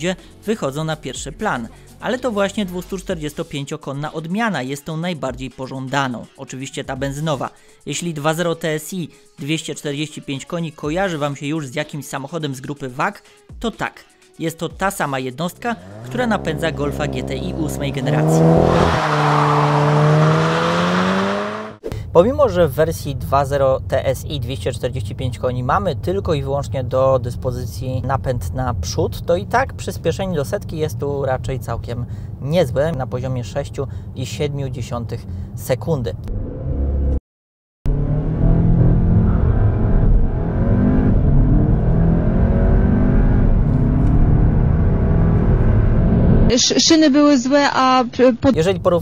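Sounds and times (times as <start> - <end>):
car engine accelerating: 15.7 - 21.8, 36.2 - 37.2, 37.9 - 46.6
tyre and road noise: 15.7 - 21.8.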